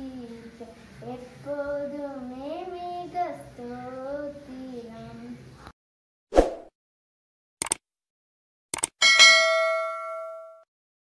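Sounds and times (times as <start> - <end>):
notification bell ding: 9.0 - 10.7.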